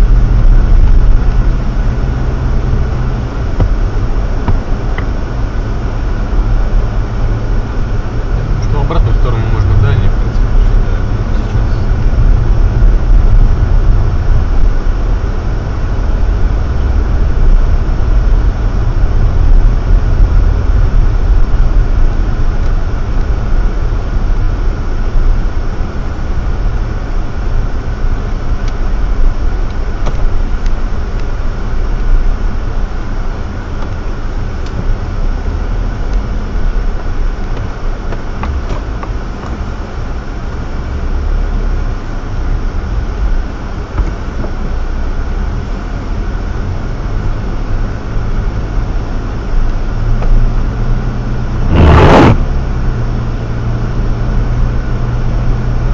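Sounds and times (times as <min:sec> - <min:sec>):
car engine and tyres rumbling: 0:00.0 - 0:55.9.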